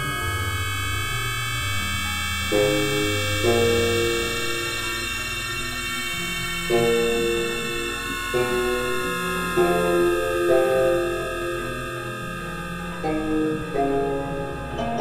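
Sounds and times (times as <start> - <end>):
high synthesizer drone tones: 0.0 - 15.0
low sustained synthesizer chords: 0.0 - 15.0.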